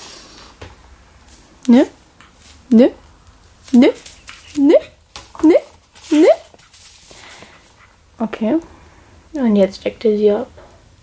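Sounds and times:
woman's questioning voice: 4.6s - 6.5s.

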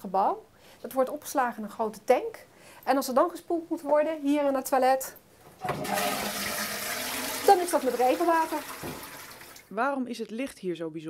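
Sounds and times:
toilet flushing water rush: 5.6s - 9.7s.

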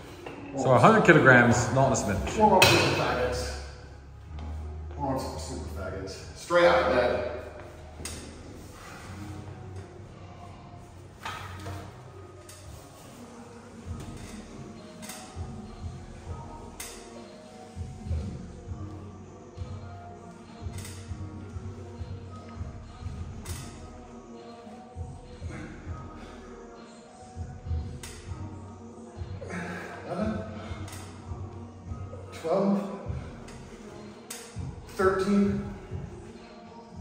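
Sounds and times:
background music: 0.0s - 37.0s.

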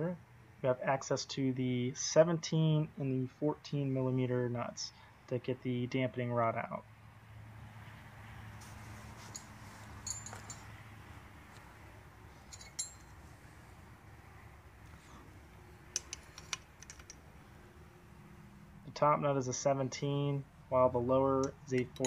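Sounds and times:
metallic clicks of a wrench: 21.4s - 22.0s.

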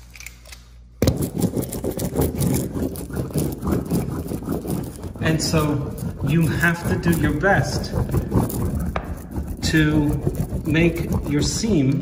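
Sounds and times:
seam roller clattering and scraping: 1.0s - 12.0s.

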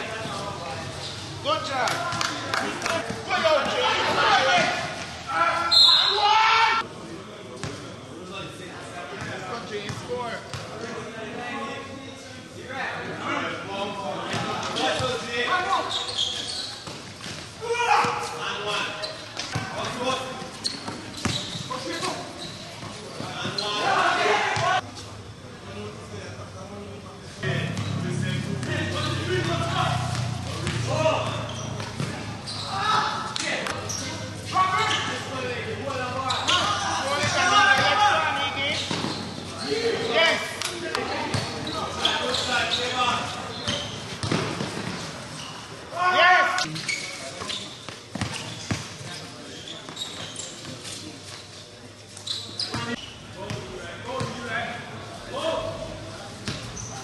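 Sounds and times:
people calling out and talking: 0.0s - 11.2s, 17.5s - 44.2s
basketball bouncing: 43.7s - 45.0s.

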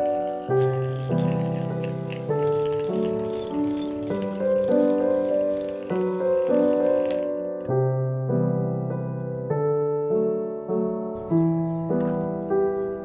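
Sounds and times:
electric hand mixer rattling: 0.0s - 7.4s
background piano music: 0.0s - 13.0s.

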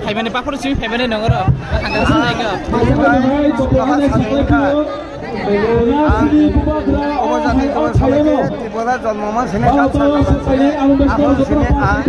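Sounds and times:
crowd chatter: 0.0s - 12.0s
man speaking: 0.0s - 12.0s.

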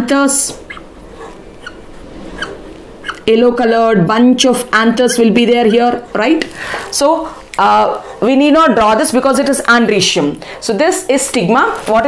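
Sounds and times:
whiteboard marker squeaking: 0.6s - 0.9s, 1.6s - 3.3s, 5.0s - 6.0s.

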